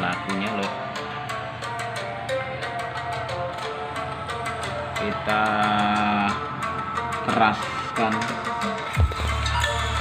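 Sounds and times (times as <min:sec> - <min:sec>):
electronic music with steady beat: 0:00.0 - 0:10.0.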